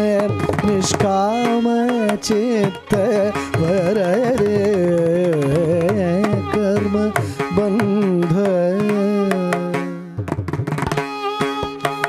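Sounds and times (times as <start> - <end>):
man singing with oscillating notes: 0.0 - 10.2
drum strokes: 0.0 - 12.0.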